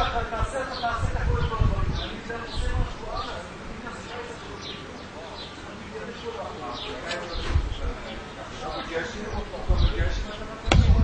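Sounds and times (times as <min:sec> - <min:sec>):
faint voices: 0:00.0 - 0:11.0
dull thumps: 0:10.7 - 0:11.0
sharp knock: 0:10.7 - 0:11.0.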